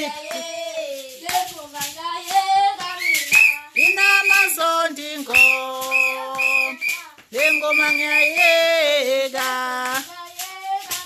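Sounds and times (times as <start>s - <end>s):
plastic whistle blasts: 3.0s - 4.5s, 5.3s - 8.6s.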